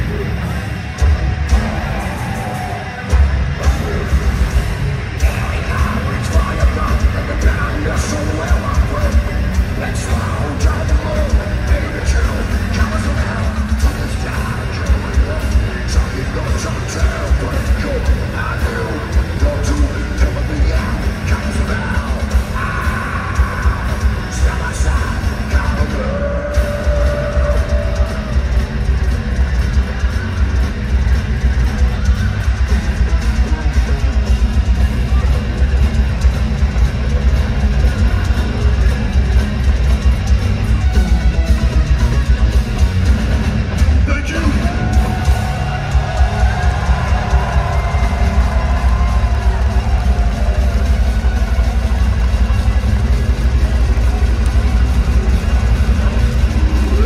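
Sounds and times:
crowd noise: 0:00.0 - 0:57.0
heavy metal band playing live: 0:00.0 - 0:57.0.

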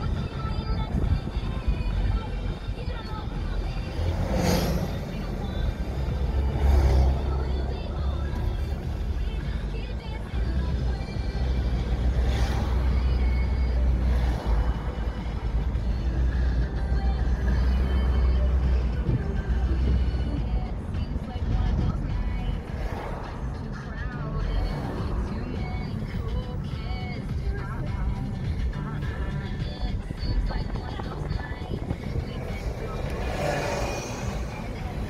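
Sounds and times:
car interior road noise: 0:00.0 - 0:35.0
vehicles passing by: 0:00.0 - 0:35.0.

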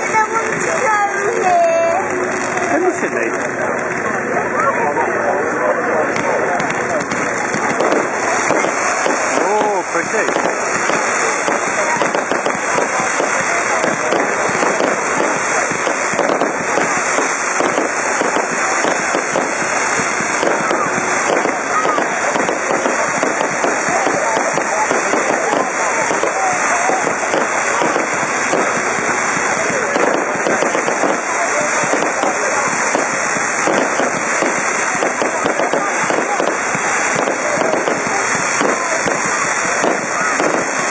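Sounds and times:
fireworks crackling and banging: 0:00.0 - 0:40.9.

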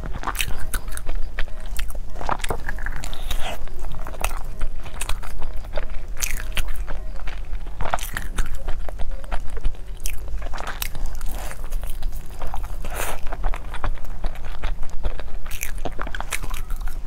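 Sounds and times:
biting and chewing: 0:00.0 - 0:17.0.

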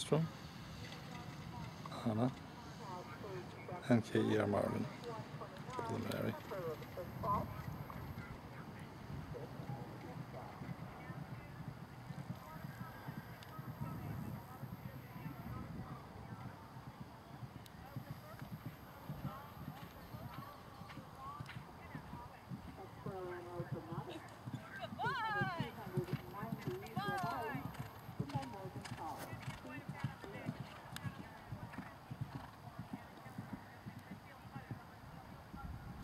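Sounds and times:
horse hoofbeats on turf: 0:04.8 - 0:34.9.

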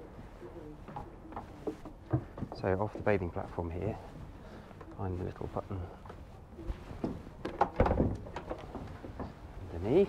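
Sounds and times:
hatch knocking and thunk: 0:07.0 - 0:08.4.

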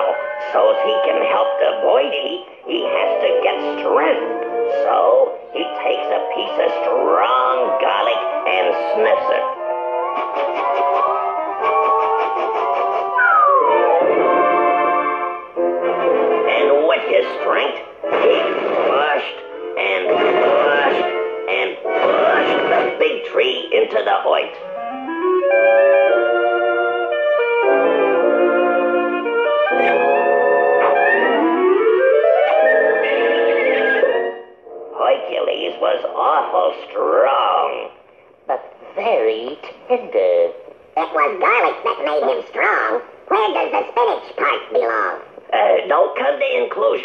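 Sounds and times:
orchestral cartoon music: 0:00.0 - 0:36.0.

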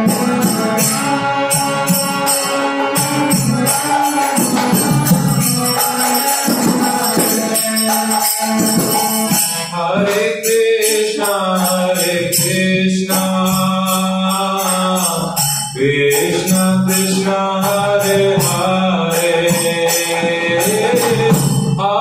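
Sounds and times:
hand cymbals striking: 0:00.0 - 0:21.8.

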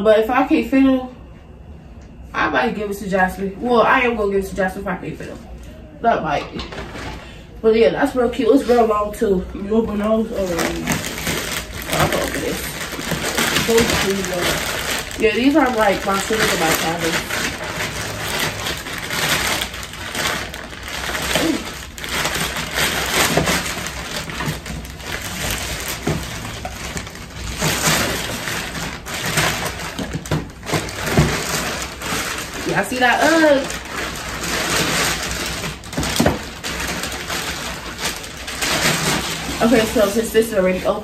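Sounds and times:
plastic mailer bag crinkling: 0:08.3 - 0:41.0.

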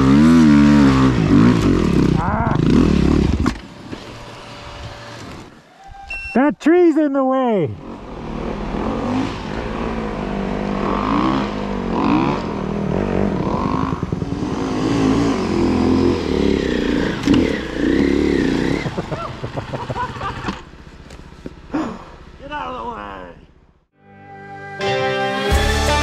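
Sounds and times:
snow bike engine revving: 0:00.0 - 0:05.5, 0:07.8 - 0:20.8.

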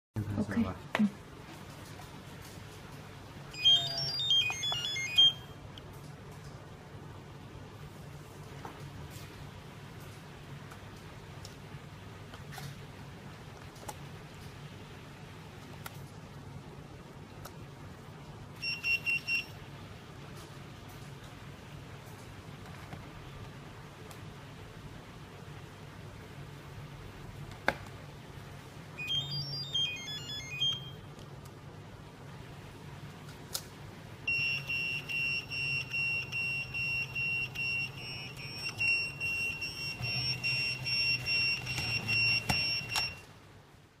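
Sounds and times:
high-pitched electronic beeps: 0:03.6 - 0:05.6, 0:29.0 - 0:31.0, 0:34.3 - 0:43.2.

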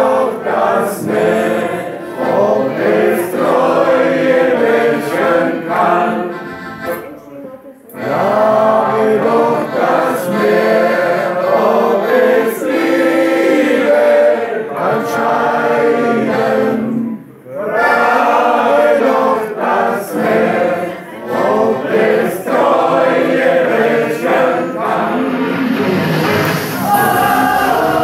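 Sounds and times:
group of people singing: 0:00.0 - 0:07.0, 0:07.9 - 0:28.0
accordion: 0:00.0 - 0:28.0.

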